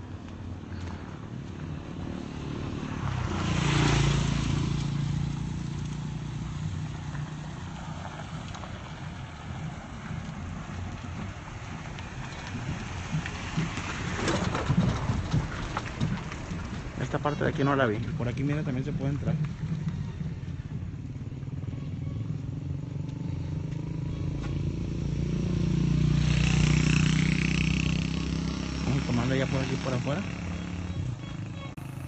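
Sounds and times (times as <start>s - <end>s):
outdoor background noise: 0.0s - 32.0s
vehicle engine passing: 0.0s - 32.0s.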